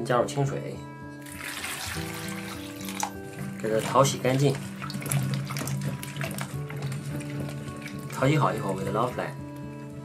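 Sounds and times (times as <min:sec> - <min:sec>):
background music: 0:00.0 - 0:10.0
water splashing in a bowl: 0:01.2 - 0:09.2.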